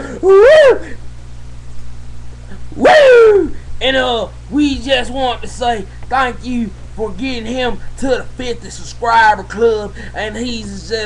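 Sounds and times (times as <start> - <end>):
person yelling woo: 0.0 - 1.0, 2.8 - 3.6
low room hum: 0.0 - 11.0.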